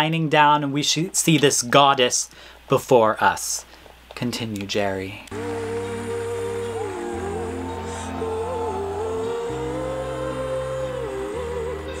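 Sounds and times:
deep sustained chords: 5.3s - 12.0s
woman singing long notes: 5.3s - 12.0s.

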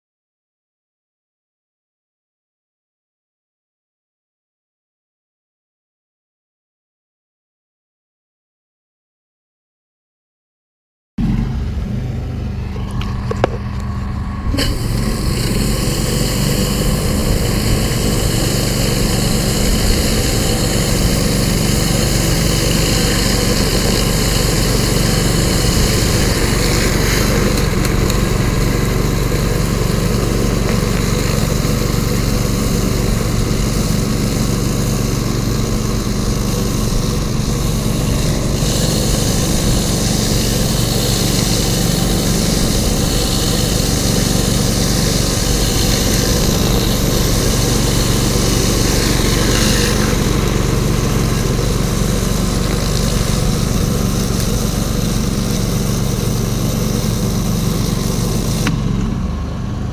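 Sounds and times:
spray hissing: 11.2s - 59.0s
pressure washer engine running: 11.2s - 59.9s.

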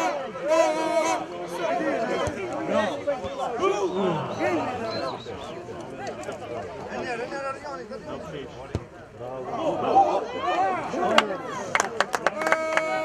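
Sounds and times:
players shouting: 0.0s - 7.5s, 9.4s - 13.0s
football being kicked: 8.7s - 8.9s.

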